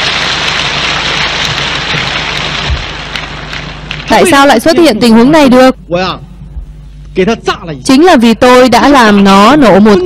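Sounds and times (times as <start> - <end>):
audience applause: 0.0 - 4.7
low electrical hum: 0.0 - 10.0.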